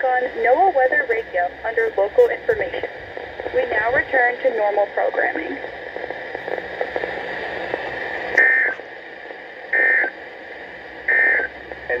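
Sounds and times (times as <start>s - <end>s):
radio hiss: 0.0s - 12.0s
loud buzzing data bursts: 8.4s - 8.8s, 9.7s - 10.2s, 11.0s - 12.0s.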